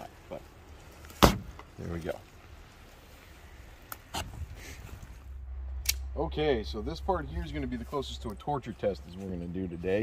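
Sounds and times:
low wind rumble: 0:02.4 - 0:09.1.

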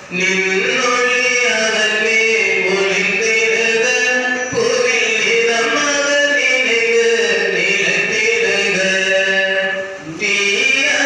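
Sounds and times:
priest chanting into microphone: 0:00.0 - 0:11.0.

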